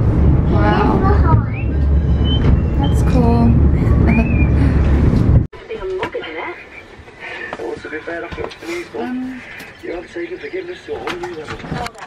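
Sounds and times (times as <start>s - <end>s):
funicular car rumbling: 0.0s - 5.5s.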